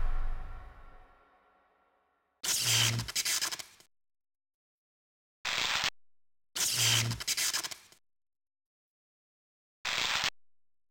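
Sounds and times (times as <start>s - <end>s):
low bass tone: 0.0s - 1.0s.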